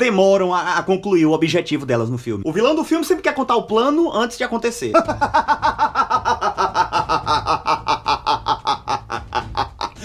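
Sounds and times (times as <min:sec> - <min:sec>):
man laughing evilly: 0:05.0 - 0:10.0.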